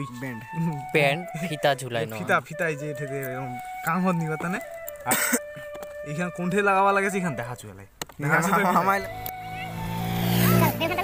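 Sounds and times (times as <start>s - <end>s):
vehicle engine running: 8.6s - 11.0s.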